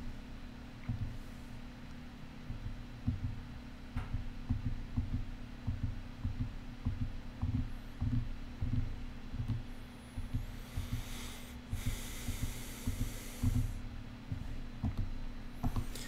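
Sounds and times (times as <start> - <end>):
steady hum: 0.0 - 16.0
muffled bass beat: 0.8 - 1.2, 2.4 - 16.0.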